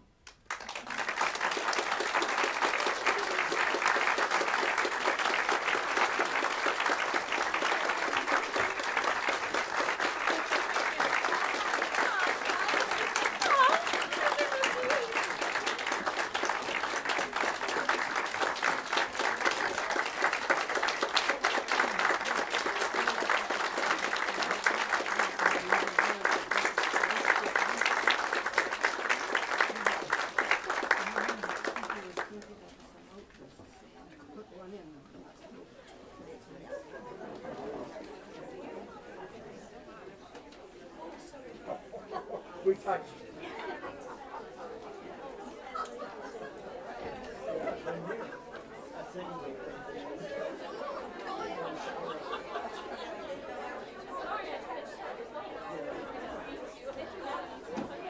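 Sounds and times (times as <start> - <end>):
audience applause: 0.5 - 32.5.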